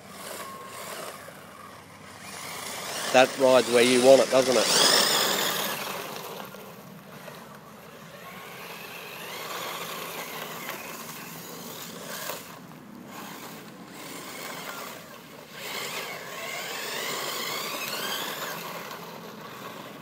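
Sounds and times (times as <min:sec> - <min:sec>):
toy car motor whining: 0:00.0 - 0:20.0.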